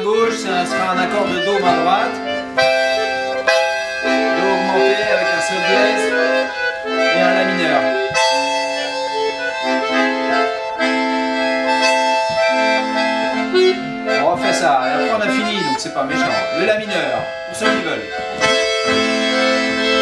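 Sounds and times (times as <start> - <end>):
button accordion melody: 0.0 - 20.0.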